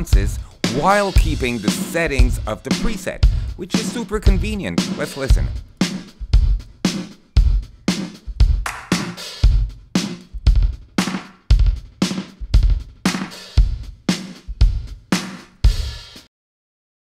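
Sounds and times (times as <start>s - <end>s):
drum kick and snare with gated reverb: 0.0s - 16.3s.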